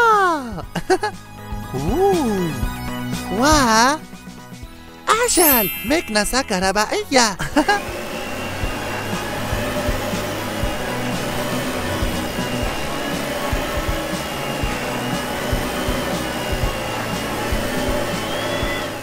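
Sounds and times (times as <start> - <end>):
background music: 0.0 - 19.0
toy vacuum cleaner whirring: 7.7 - 19.0.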